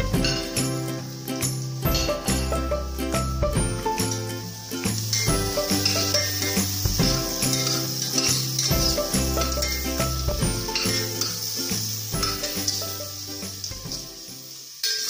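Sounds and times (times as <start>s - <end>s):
background music with bass line: 0.0s - 14.2s
onion and garlic sizzling: 0.0s - 15.0s
spoon stirring: 5.0s - 11.5s, 14.8s - 15.0s.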